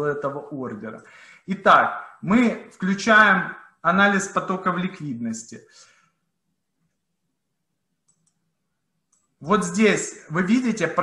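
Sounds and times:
faint mouse clicks: 8.0 - 8.5, 9.1 - 9.4.

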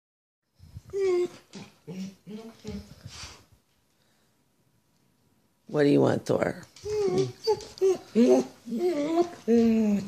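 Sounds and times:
dog whining: 0.8 - 3.3, 6.8 - 10.0.

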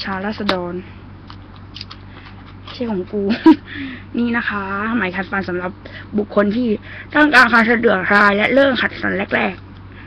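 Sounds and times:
woman speaking: 0.0 - 1.0, 2.7 - 9.6
low electrical hum: 0.0 - 10.0.

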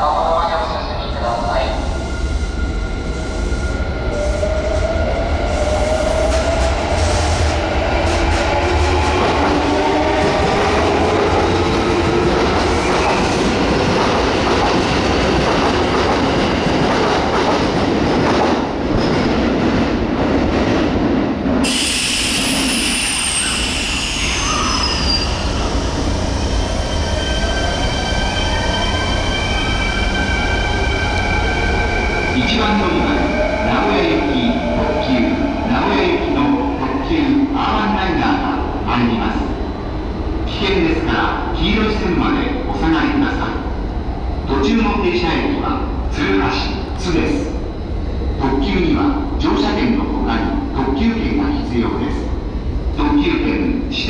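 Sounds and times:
train wheels rumbling: 1.7 - 36.8
train braking with whining tones: 21.6 - 37.5.

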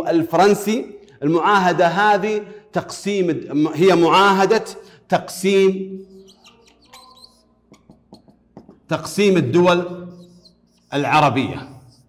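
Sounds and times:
marker squeaking on whiteboard: 5.9 - 12.0.

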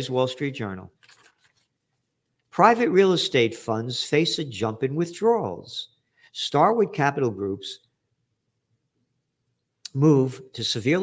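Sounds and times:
man talking: 0.0 - 0.9, 2.5 - 7.9, 9.8 - 11.0.

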